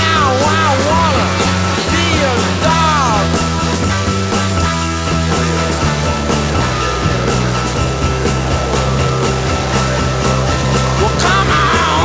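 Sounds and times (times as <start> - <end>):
rock music with bass line: 0.0 - 12.0.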